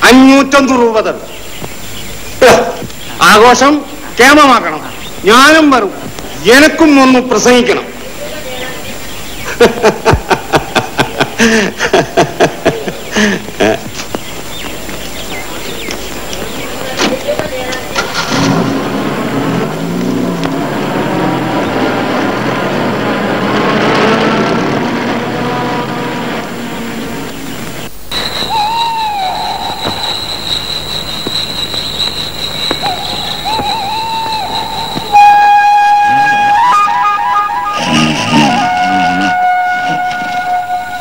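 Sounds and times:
car engine and road noise: 14.1 - 36.6
wavering flute-like melody: 28.1 - 31.7, 32.5 - 41.0
steady high tone: 28.1 - 41.0.

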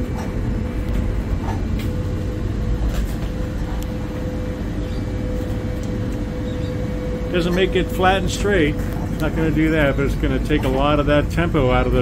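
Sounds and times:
diesel engines rumbling: 0.0 - 12.0
faint steady whine: 0.0 - 12.0.

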